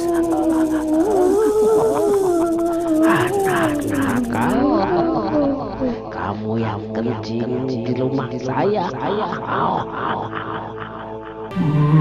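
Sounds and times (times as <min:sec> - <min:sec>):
monster growl: 0:00.0 - 0:06.0.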